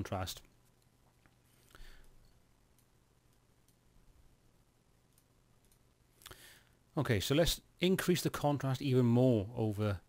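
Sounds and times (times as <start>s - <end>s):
low steady hum: 0.0s - 10.0s
computer mouse clicks: 5.1s - 6.4s.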